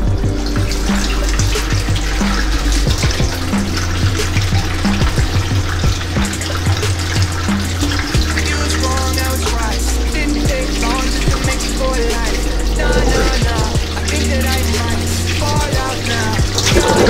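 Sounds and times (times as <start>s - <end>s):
music with heavy bass line: 0.0s - 17.0s.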